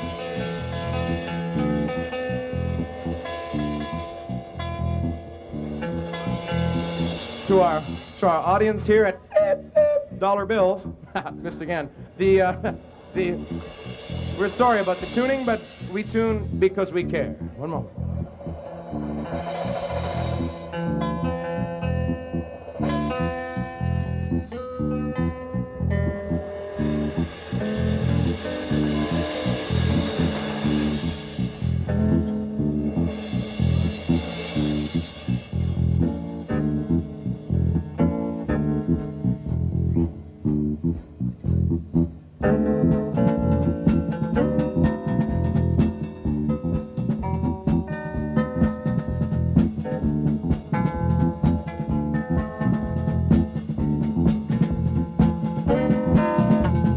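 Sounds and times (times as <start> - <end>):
bass guitar: 0.0 - 56.9
electric guitar notes: 0.0 - 56.9
hazy sustained sound: 17.3 - 35.5.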